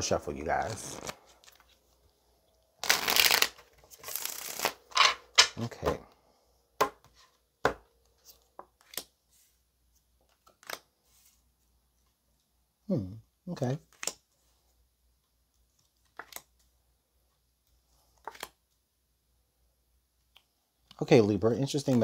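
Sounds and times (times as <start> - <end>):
cards shuffling: 0.6 - 2.0, 2.8 - 5.7, 7.0 - 9.6, 10.2 - 11.4, 13.8 - 14.3, 15.8 - 16.7, 18.0 - 18.6.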